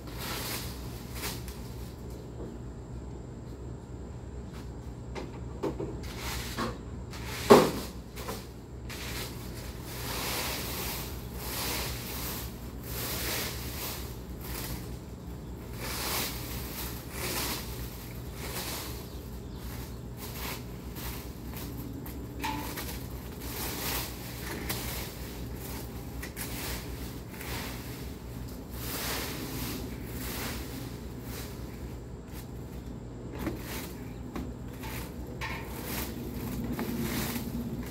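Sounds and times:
rake scraping dry leaves: 0.0s - 2.3s, 6.0s - 37.9s.

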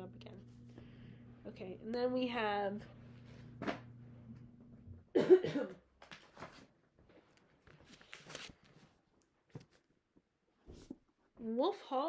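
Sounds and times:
woman coughing: 5.1s - 5.8s.

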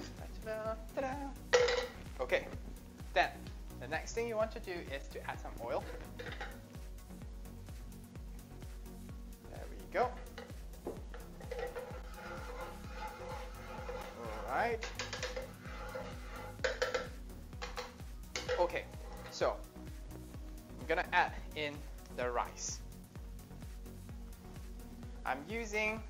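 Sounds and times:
background music: 0.0s - 26.0s
spatula scraping a wok: 5.8s - 6.6s, 10.2s - 19.4s.

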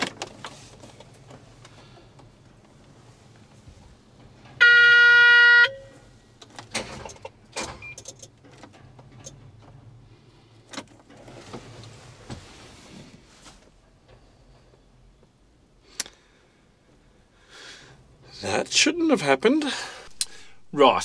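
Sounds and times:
clicks and knocks from controls: 6.4s - 9.9s, 10.7s - 12.4s.

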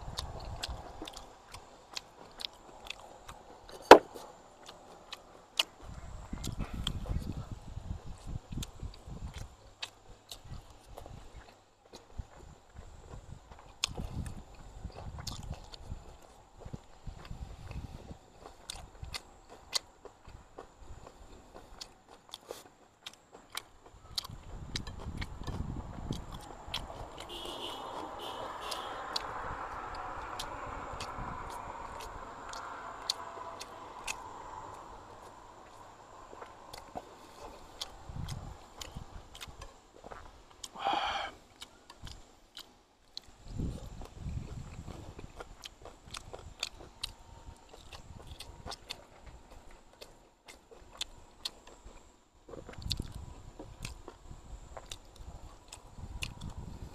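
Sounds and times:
man chewing food: 0.0s - 56.9s.

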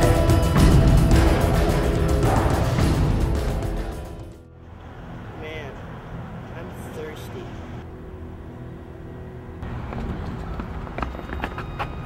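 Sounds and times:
low urban rumble: 0.0s - 12.0s.

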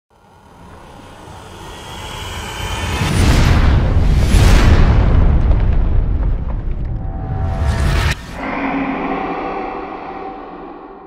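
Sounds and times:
rumbling rise sound effect: 0.2s - 11.0s.

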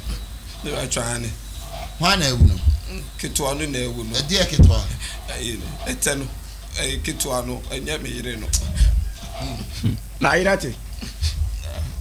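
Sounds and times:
man talking into a microphone: 2.0s - 9.0s
short low thumps: 2.3s - 3.1s, 4.5s - 5.1s.

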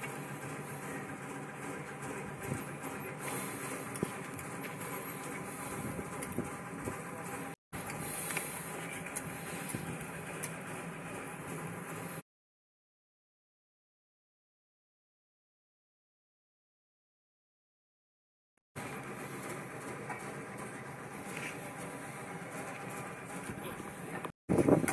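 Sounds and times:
mechanical hum: 0.0s - 12.2s, 18.8s - 24.9s.

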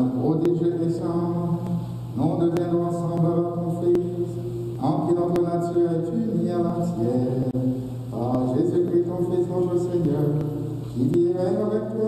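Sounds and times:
man chanting a prayer: 0.0s - 12.0s.

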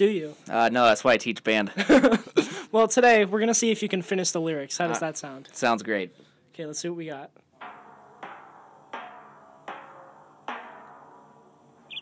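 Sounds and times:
high chirping notes: 7.6s - 12.0s.

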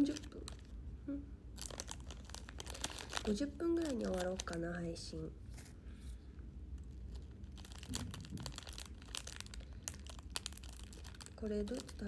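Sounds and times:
plastic wrapper crackling: 0.0s - 0.8s, 1.5s - 5.2s, 6.7s - 12.0s.

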